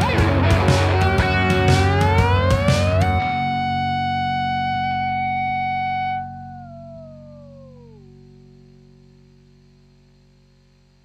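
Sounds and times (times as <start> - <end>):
closing music with held notes: 0.0 - 9.4.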